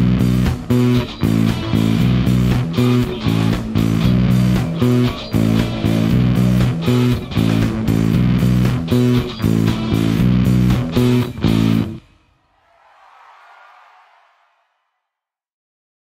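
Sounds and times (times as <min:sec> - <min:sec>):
rock band music: 0:00.2 - 0:11.4.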